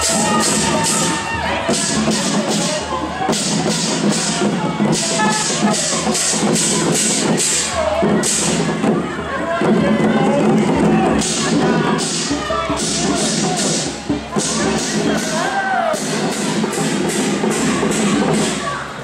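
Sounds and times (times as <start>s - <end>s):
music with percussion beat: 0.0s - 19.0s
voices and crowd noise: 0.0s - 19.0s.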